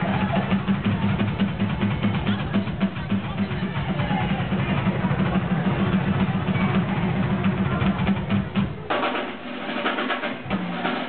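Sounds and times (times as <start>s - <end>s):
drums and cymbals: 0.0s - 11.0s.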